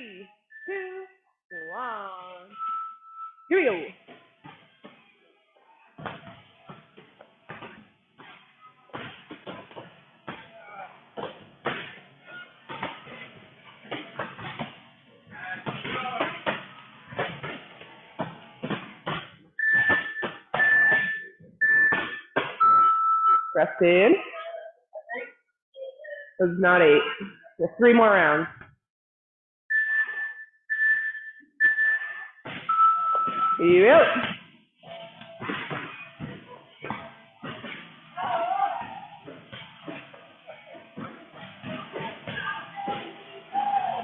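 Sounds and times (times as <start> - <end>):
timer long low beep: 0.5 - 3.6, 29.7 - 33.6
timer short high beeps: 0.6 - 3.6, 29.7 - 33.6
knocks and thumps from exercising: 4.0 - 23.0, 32.4 - 43.4.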